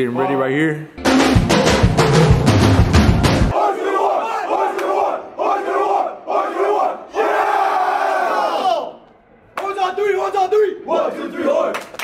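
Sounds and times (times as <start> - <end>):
drum-heavy music: 1.0 - 3.5
young men chanting in unison: 3.5 - 9.0, 10.4 - 11.8.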